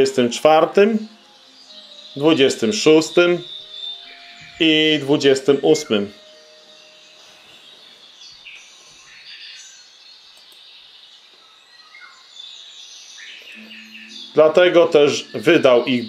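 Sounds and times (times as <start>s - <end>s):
faint bird chirps: 0.0s - 16.0s
low background noise: 0.0s - 16.0s.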